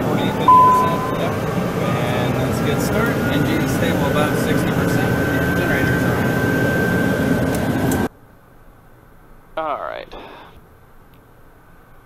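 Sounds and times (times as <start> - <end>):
short falling pitch sound: 0.5 - 1.5.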